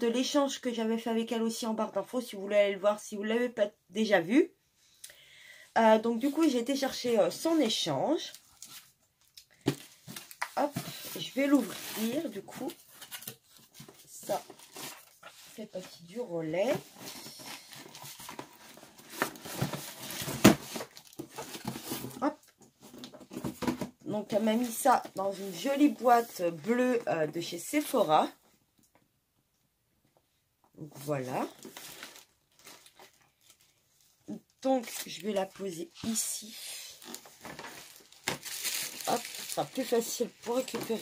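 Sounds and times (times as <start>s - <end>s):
packaging rustling and crinkling: 8.3s - 23.9s, 31.2s - 41.0s.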